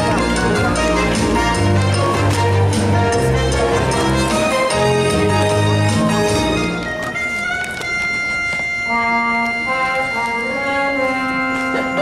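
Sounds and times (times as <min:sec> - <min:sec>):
brass-led orchestral music: 0:00.0 - 0:12.0.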